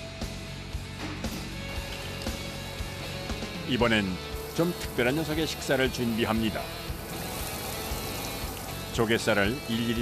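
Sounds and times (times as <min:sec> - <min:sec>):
background music: 0:00.0 - 0:10.0
tap water running into steel sink: 0:04.3 - 0:10.0.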